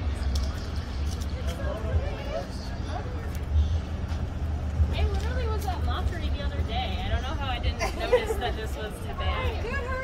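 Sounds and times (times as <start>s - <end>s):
faint voices: 0.0s - 10.0s
low street rumble: 0.0s - 10.0s.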